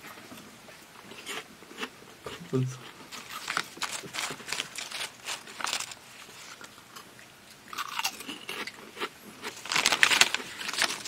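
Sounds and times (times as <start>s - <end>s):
crunching chips: 2.8s - 7.1s, 7.7s - 11.0s.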